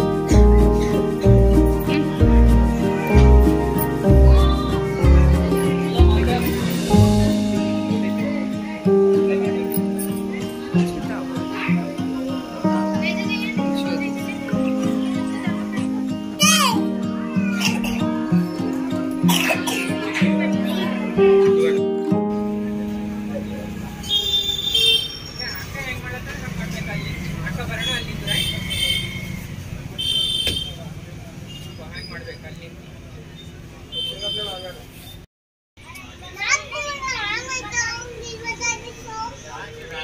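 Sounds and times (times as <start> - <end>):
music with quick repeated notes: 0.0 - 24.0
girl speaking: 16.4 - 17.7, 36.2 - 39.4.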